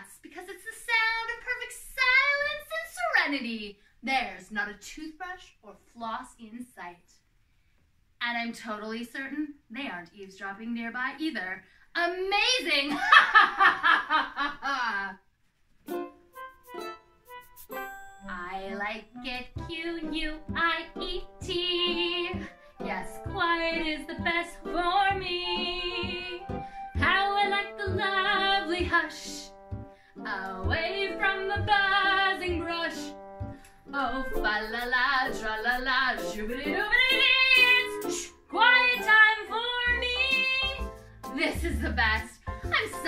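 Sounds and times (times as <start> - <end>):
instrumental backing track: 15.8 - 18.3, 19.1 - 41.4
woman singing with vibrato: 18.3 - 29.5, 30.3 - 33.1, 33.9 - 40.6.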